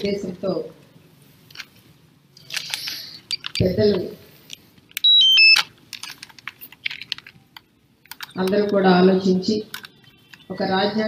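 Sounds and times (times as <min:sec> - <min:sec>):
loud electronic beeps: 0:05.0 - 0:05.6.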